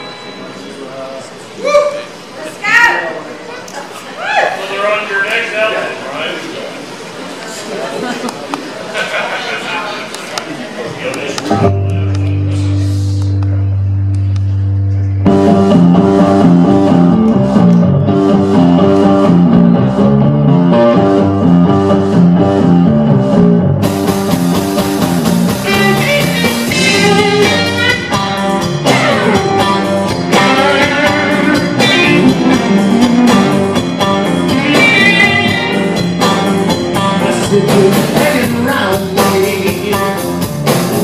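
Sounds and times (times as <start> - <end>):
electric blues band: 11.3 - 41.0
lead guitar bent notes: 11.3 - 41.0.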